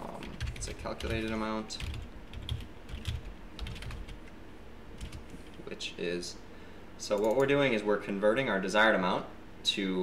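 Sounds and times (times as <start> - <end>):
computer keyboard typing: 0.0 - 4.3, 5.0 - 5.5, 7.2 - 7.6.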